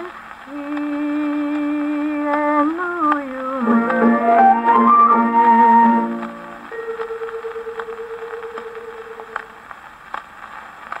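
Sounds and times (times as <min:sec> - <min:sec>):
record hiss and crackle: 0:00.0 - 0:11.0
record surface clicks: 0:00.6 - 0:10.3.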